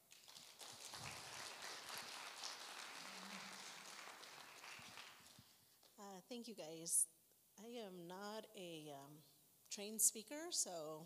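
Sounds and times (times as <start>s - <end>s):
congregation applauding: 0.0s - 5.6s.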